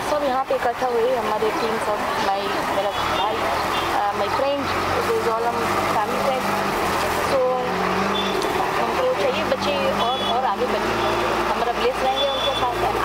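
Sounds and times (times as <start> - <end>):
woman speaking: 0.0 - 6.6, 7.2 - 7.8, 8.7 - 13.0.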